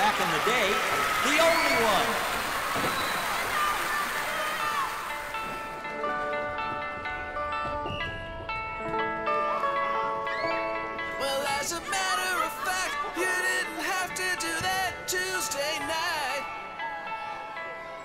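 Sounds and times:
audience applause: 0:00.0 - 0:05.7.

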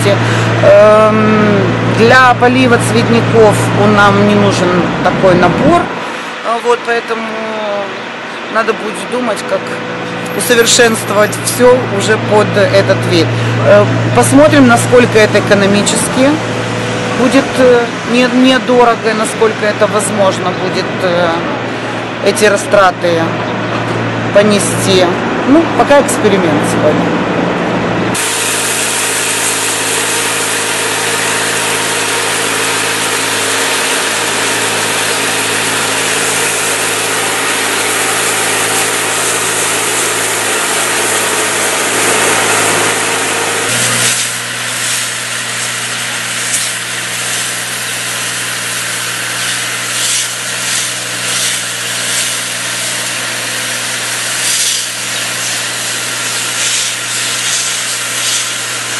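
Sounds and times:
pump motor humming: 0:00.0 - 0:58.9
pressure washer spray hissing: 0:28.2 - 0:58.9.

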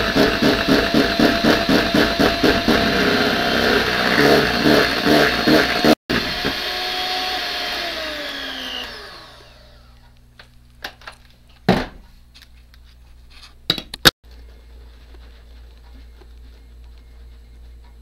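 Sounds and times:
electric hand mixer whipping: 0:00.0 - 0:10.0.

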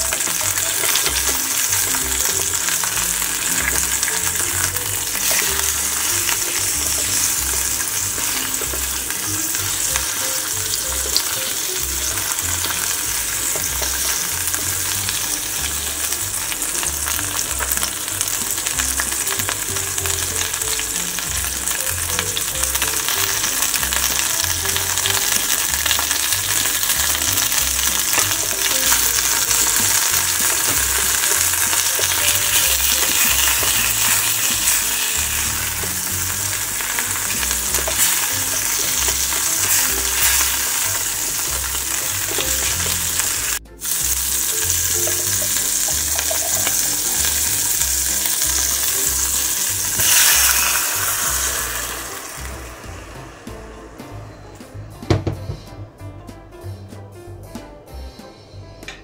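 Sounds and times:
chicken frying in oil: 0:00.0 - 0:53.3.

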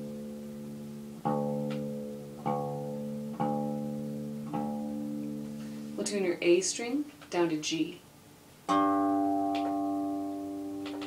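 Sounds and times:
guitar string plucked and ringing: 0:00.0 - 0:05.8, 0:08.7 - 0:11.0.

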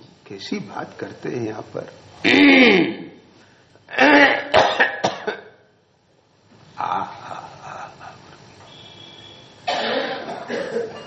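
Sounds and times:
man clearing throat and coughing: 0:02.2 - 0:03.1, 0:03.9 - 0:05.6, 0:09.7 - 0:11.0.

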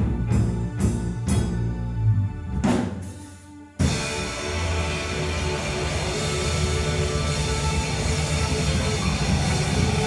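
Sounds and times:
rock band distorted drone: 0:00.0 - 0:10.0.

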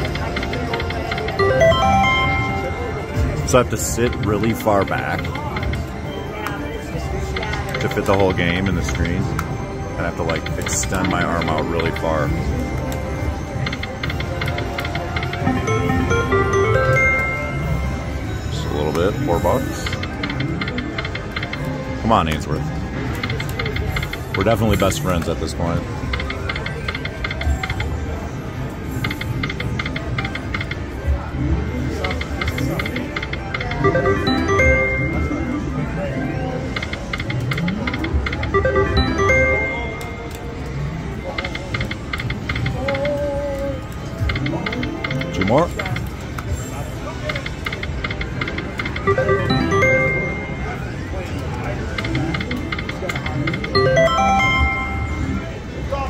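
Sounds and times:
slot machine reels spinning: 0:00.0 - 0:06.1, 0:07.2 - 0:22.1, 0:23.0 - 0:31.0, 0:31.9 - 0:43.0, 0:43.8 - 0:55.7
electronic chime tones: 0:01.4 - 0:03.3, 0:15.5 - 0:18.8, 0:33.8 - 0:35.6, 0:38.6 - 0:40.2, 0:49.1 - 0:50.9, 0:53.8 - 0:55.6
background chatter: 0:22.6 - 0:56.0.

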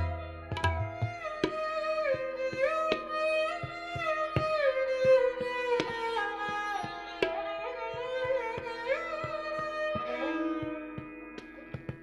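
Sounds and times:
sarangi melody: 0:00.0 - 0:12.0
tabla strokes: 0:00.0 - 0:12.0.

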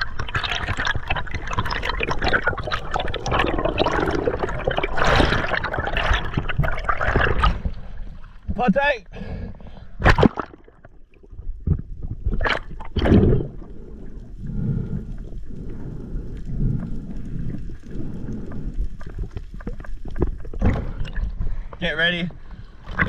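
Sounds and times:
water sloshing and splashing: 0:00.0 - 0:08.6, 0:09.3 - 0:21.8, 0:22.4 - 0:23.0.

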